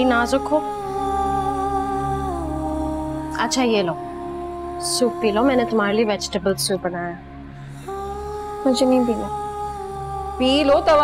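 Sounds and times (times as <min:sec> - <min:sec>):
soft music of held tones: 0:00.0 - 0:11.0.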